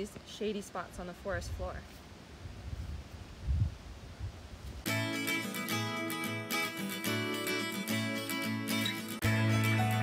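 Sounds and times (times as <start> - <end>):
acoustic guitar music: 4.9 - 10.0.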